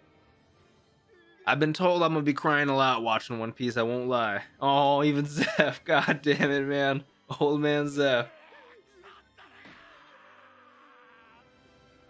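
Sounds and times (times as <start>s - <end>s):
faint music with held tone: 0.0s - 12.0s.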